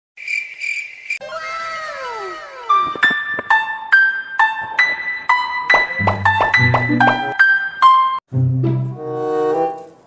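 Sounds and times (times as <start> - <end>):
high shrill chirping tone: 1.1 - 3.4
tones sliding down in pitch: 1.2 - 3.5.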